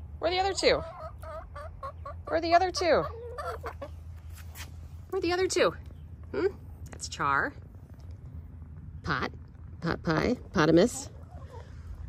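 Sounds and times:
hens clucking: 0.3 - 4.1, 11.0 - 12.0.

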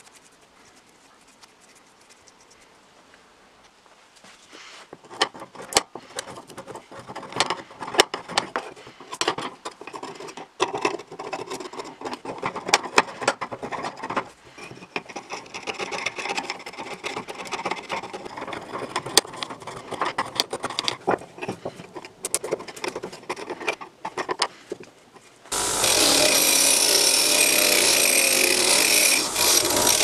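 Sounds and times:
steel blade scraping paint: 25.5 - 30.0.

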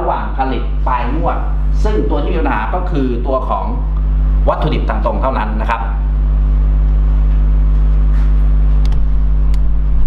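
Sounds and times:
loud steady low hum: 0.0 - 10.0.

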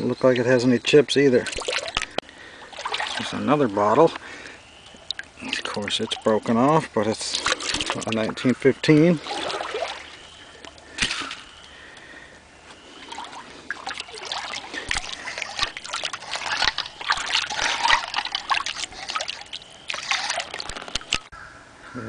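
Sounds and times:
creek water splashing: 1.2 - 12.2, 12.8 - 21.3.

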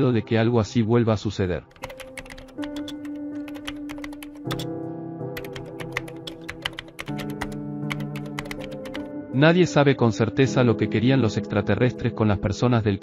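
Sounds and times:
background music of held chords: 0.0 - 13.0
rapid typing on a keyboard: 1.7 - 4.7, 5.4 - 9.1.

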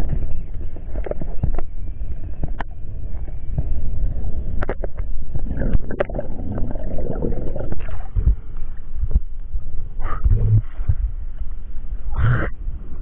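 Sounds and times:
underwater rumble of moving water: 0.0 - 13.0
water rushing burst: 5.4 - 8.3.

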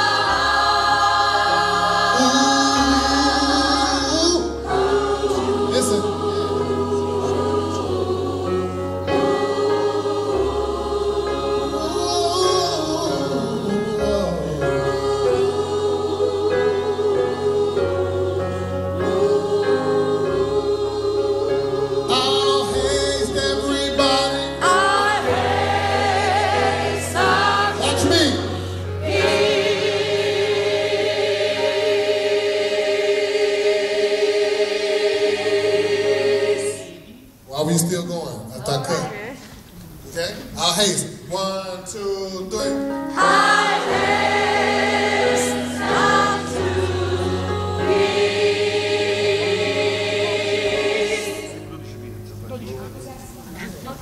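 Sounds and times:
choir singing gospel: 0.0 - 54.0.

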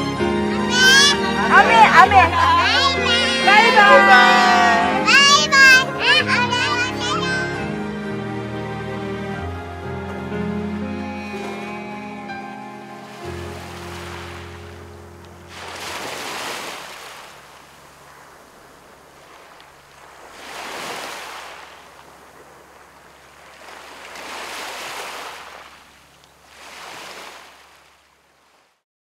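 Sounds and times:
waves washing onto pebble beach: 13.0 - 14.8, 15.4 - 28.7.

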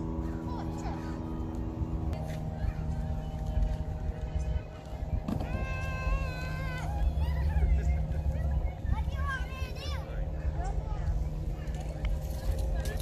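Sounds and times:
children's voices: 0.0 - 13.0
low rumble: 0.0 - 13.0
child's wavering call: 5.4 - 10.0.

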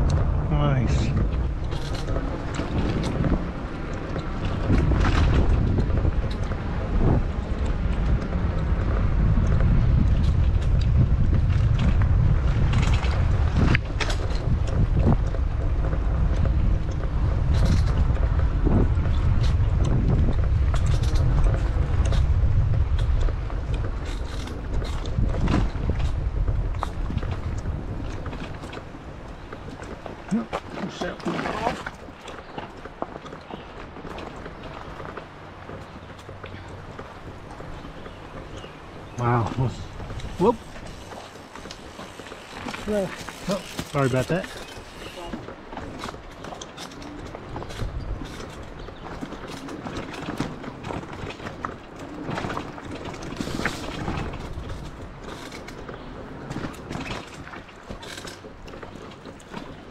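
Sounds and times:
bike knocks and rattles: 0.0 - 59.9
wind rumbling on microphone: 0.0 - 59.9.

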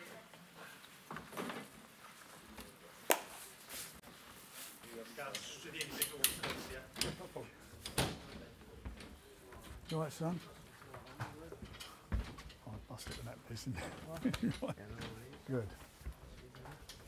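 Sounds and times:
people chatting: 12.7 - 15.8.

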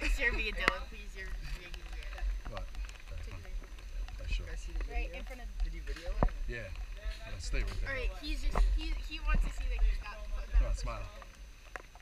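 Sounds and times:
people talking indistinctly: 0.0 - 11.4
low microphone rumble: 0.0 - 12.0.

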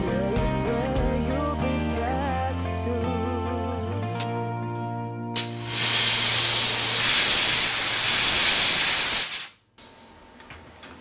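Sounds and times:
steam jet hissing: 5.4 - 9.6.

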